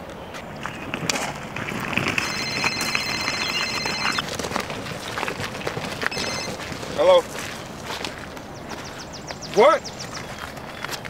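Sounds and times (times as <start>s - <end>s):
mobile phone ringing: 2.0s - 4.3s, 6.1s - 6.6s.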